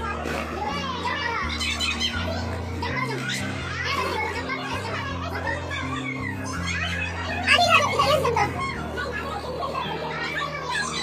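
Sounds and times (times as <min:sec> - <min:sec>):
children calling out: 0:00.0 - 0:11.0.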